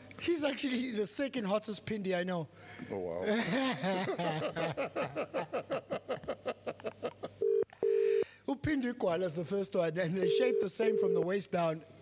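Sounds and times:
man laughing: 3.2s - 7.4s
telephone ringback tone: 7.4s - 8.2s, 10.2s - 11.2s.

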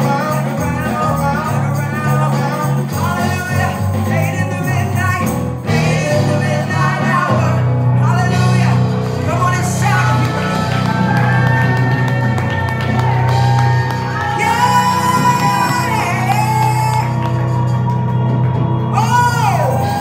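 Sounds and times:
electric keyboard chords: 0.0s - 20.0s
woman singing gospel: 9.3s - 17.2s.

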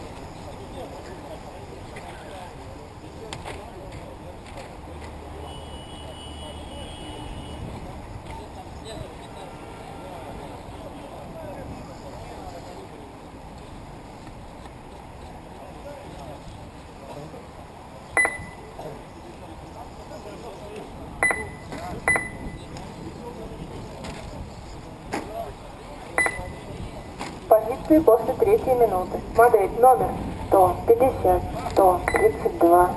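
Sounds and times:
short electronic beep: 18.2s - 18.7s, 21.2s - 22.7s, 26.2s - 26.8s, 31.9s - 32.6s
people talking: 25.2s - 32.9s.

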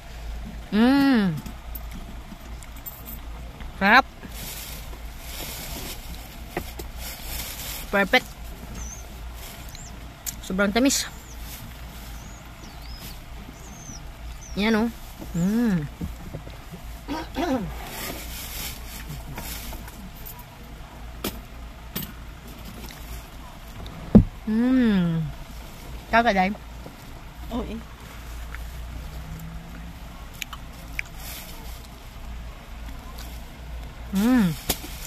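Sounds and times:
low hum: 0.0s - 34.6s.

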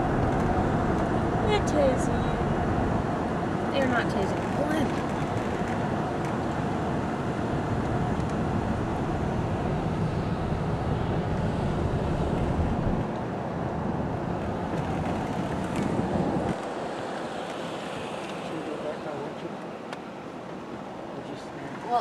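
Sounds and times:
road and engine noise inside car: 0.0s - 22.0s.

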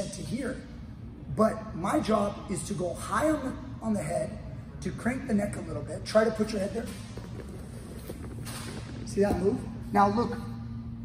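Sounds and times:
steady low hum: 0.0s - 11.0s
scuffs and rustling on foam mat: 7.0s - 9.7s.

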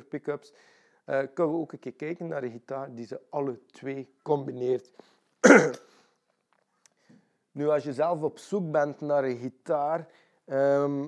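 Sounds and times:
man clearing his throat: 5.4s - 5.9s.

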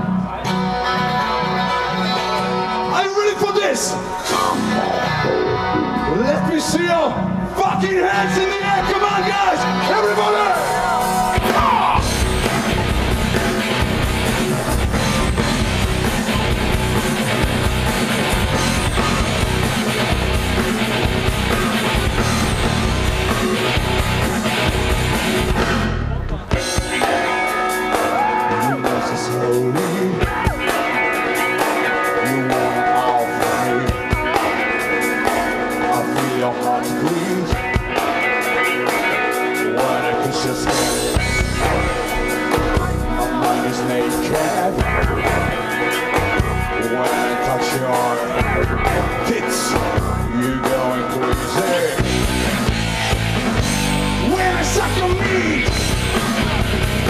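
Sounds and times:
distorted electric guitar: 0.0s - 57.0s
drum kit: 4.1s - 57.0s.

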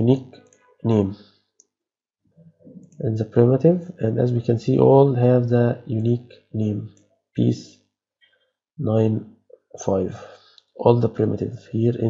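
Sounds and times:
person speaking: 0.0s - 1.2s, 2.7s - 7.7s, 8.8s - 9.2s, 9.8s - 12.0s.

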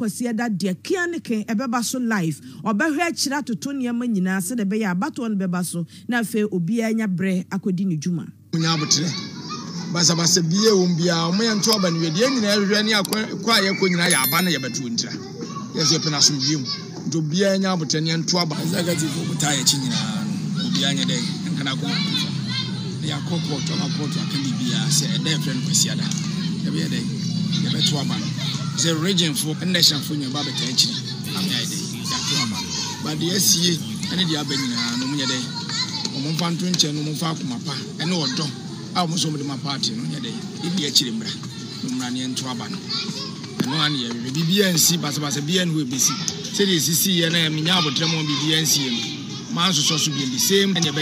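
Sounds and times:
noisy background: 8.3s - 51.0s
voices talking and calling out: 8.3s - 51.0s
man speaking: 9.9s - 15.2s, 15.8s - 22.2s, 23.0s - 42.7s, 43.7s - 51.0s.

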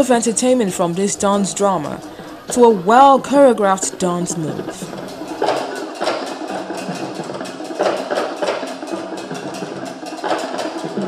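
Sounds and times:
low held notes: 0.0s - 5.7s
drums: 0.0s - 11.0s
wood block strikes: 0.0s - 11.0s.

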